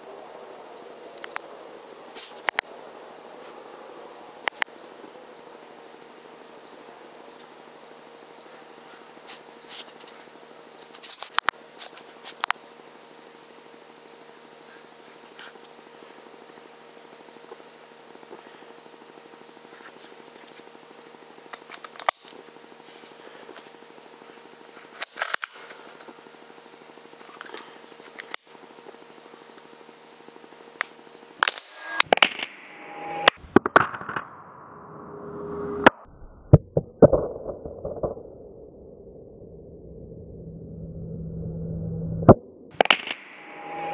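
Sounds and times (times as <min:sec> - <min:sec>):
faint electronic hum: 0:00.0 - 0:43.9
scattered clicks: 0:01.2 - 0:01.5, 0:02.2 - 0:02.7, 0:04.4 - 0:04.8, 0:10.8 - 0:12.6, 0:20.2 - 0:22.4, 0:23.5 - 0:26.2, 0:27.2 - 0:29.7, 0:30.8 - 0:32.6, 0:42.8 - 0:43.9
slow motion air rifle shots: 0:33.2 - 0:34.6, 0:42.2 - 0:43.9.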